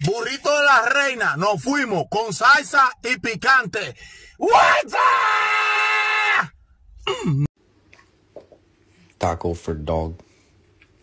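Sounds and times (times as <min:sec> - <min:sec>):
man screaming: 0:04.4 - 0:06.6.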